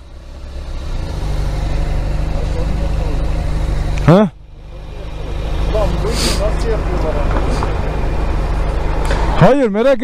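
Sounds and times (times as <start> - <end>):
motorcycle engine idling: 0.0 - 9.4.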